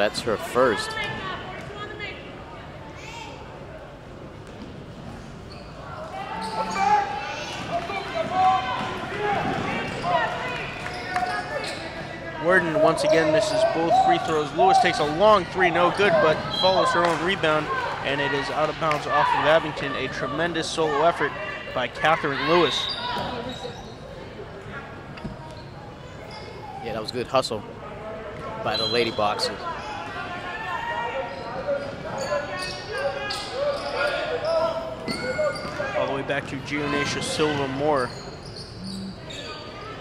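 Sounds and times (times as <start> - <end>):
voices of players and spectators: 0.0 - 40.0.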